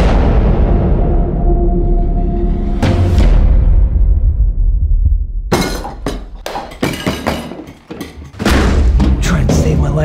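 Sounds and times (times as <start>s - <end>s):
dishes and glasses clattering: 5.5s - 8.5s.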